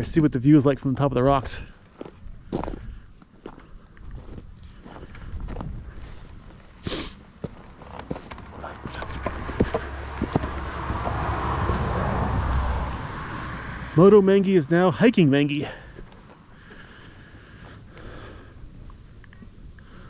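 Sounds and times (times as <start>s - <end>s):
footsteps on gravel and rock: 1.9s - 11.8s, 15.8s - 18.1s
taps and scrapes on rock: 7.8s - 10.6s.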